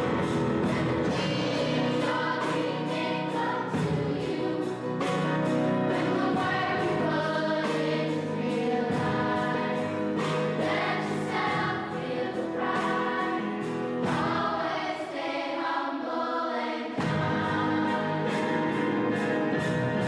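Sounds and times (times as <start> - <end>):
instrumental backing with beat: 0.0 - 14.9, 17.0 - 20.0
choir singing gospel song: 0.0 - 19.2.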